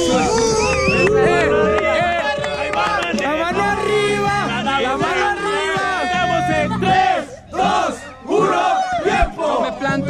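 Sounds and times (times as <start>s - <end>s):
crowd shouting ooh: 0.0s - 9.8s.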